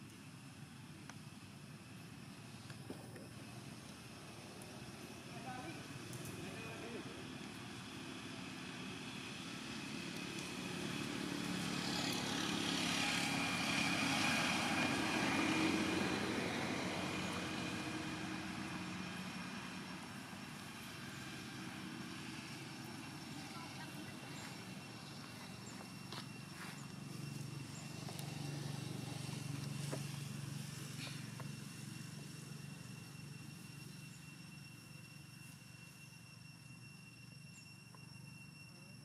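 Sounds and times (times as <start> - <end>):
engine passing by: 0.0 - 34.8.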